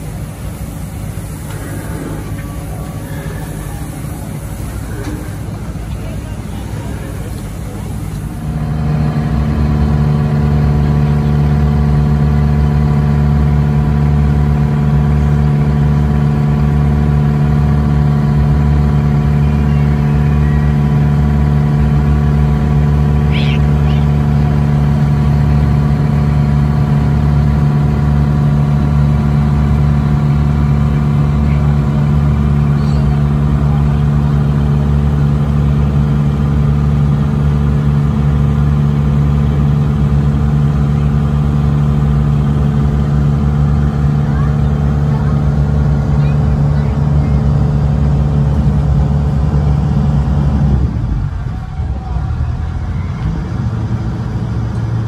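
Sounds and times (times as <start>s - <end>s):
boat engine droning: 0.0s - 55.0s.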